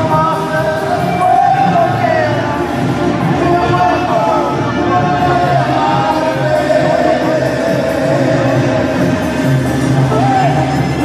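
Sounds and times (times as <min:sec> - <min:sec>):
band accompaniment: 0:00.0 - 0:11.0
man singing: 0:00.0 - 0:11.0.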